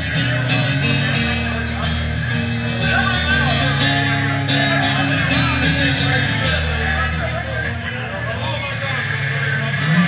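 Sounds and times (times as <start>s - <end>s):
low hum of street noise: 0.0s - 10.0s
people talking: 0.0s - 10.0s.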